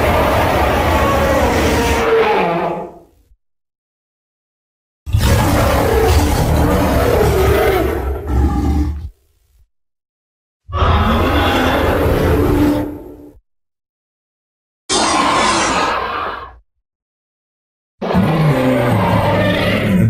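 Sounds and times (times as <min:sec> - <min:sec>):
dinosaur roar: 0:00.0 - 0:03.1, 0:05.1 - 0:09.2, 0:10.7 - 0:13.4, 0:14.9 - 0:16.6, 0:18.0 - 0:20.0.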